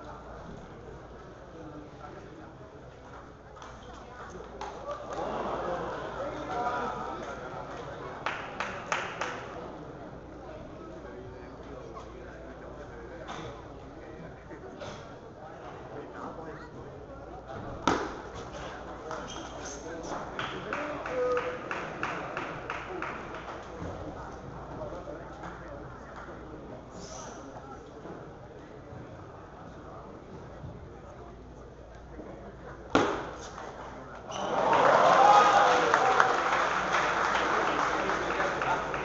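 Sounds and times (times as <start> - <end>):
spectators chattering: 0.0 - 39.0
table tennis ball crack: 33.0 - 33.6.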